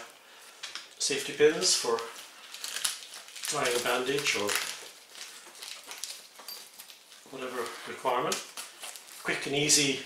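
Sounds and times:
first aid kit items rustling: 0.1s - 9.7s.

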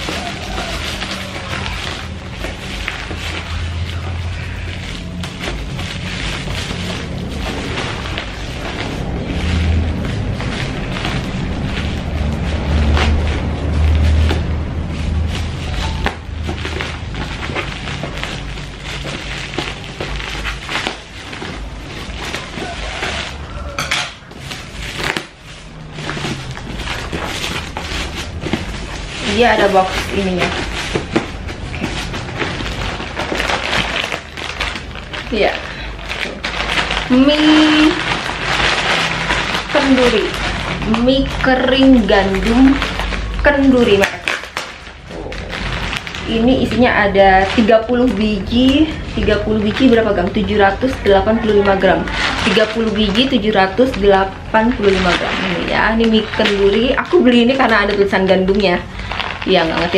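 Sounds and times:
plastic wrapping crinkling and tearing: 0.0s - 59.9s
scissors cutting plastic: 0.0s - 59.9s.

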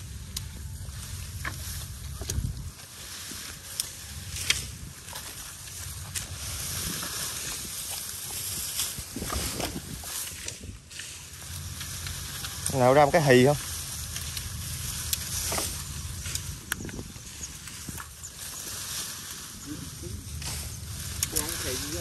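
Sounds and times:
bamboo stalks rustling and snapping: 0.0s - 22.0s
low rumble: 0.0s - 22.0s.

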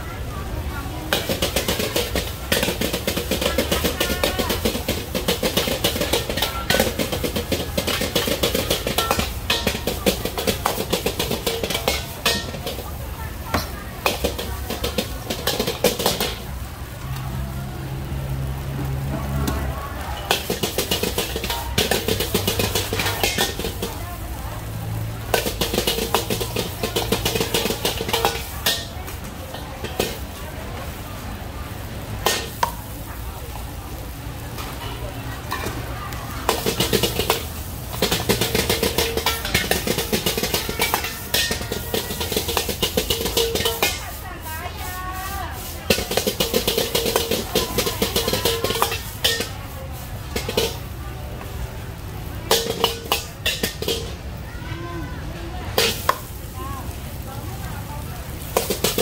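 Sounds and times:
metal ladle clanging on wok: 1.1s - 16.5s, 20.2s - 24.0s, 25.2s - 30.4s, 32.2s - 32.9s, 34.6s - 44.2s, 45.6s - 50.9s, 51.7s - 54.3s, 55.7s - 56.5s, 58.4s - 59.0s.

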